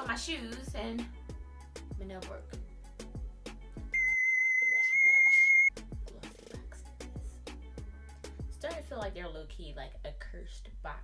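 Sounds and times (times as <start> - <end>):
background music with steady beat: 0.0 - 4.2, 5.7 - 9.8
censor bleep: 4.0 - 5.7.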